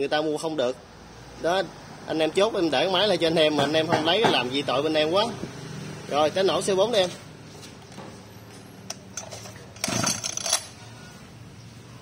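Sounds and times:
brush cutter rattle: 9.0 - 10.8.

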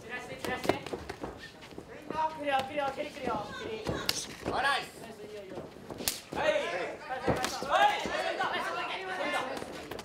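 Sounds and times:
strike slapping bare skin: 6.0 - 6.3.

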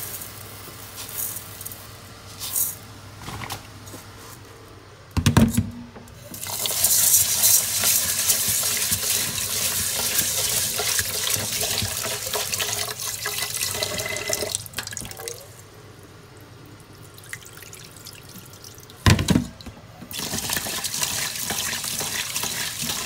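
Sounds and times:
tap water running into pot: 6.2 - 15.5, 17.1 - 23.0.

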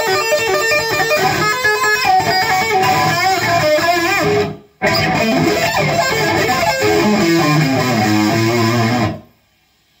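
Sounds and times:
distorted electric guitar lead: 0.0 - 9.4.

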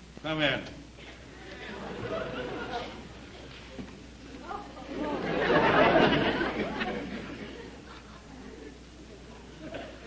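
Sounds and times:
studio audience laughing: 1.5 - 3.4, 4.9 - 8.8.

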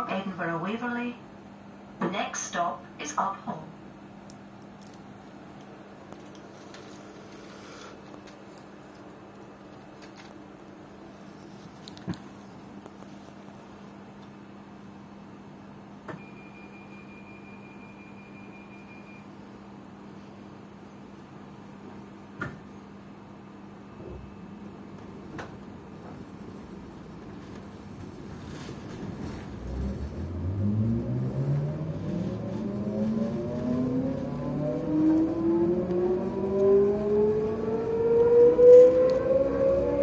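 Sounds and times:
train carriage hum: 0.0 - 16.2, 19.6 - 40.0.

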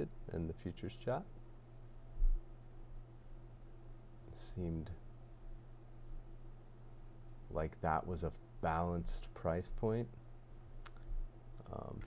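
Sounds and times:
low electrical hum: 0.0 - 12.0
faint computer mouse clicks: 1.9 - 2.1, 2.7 - 3.4.

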